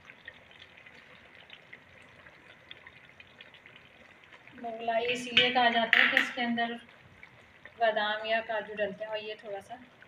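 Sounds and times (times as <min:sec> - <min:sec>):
food sizzling in a pot: 0:01.9 - 0:09.8
woman speaking: 0:04.6 - 0:06.8, 0:07.8 - 0:09.8.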